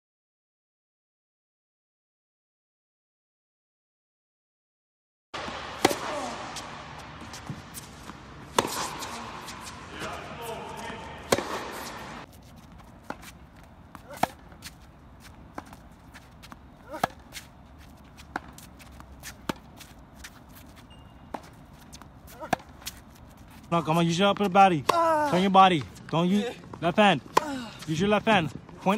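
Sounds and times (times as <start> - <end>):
tennis ball hit by rackets: 5.4 - 23.2.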